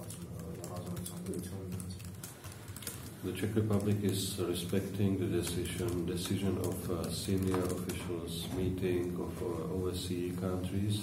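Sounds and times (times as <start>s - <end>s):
computer keyboard typing: 0.0s - 8.3s.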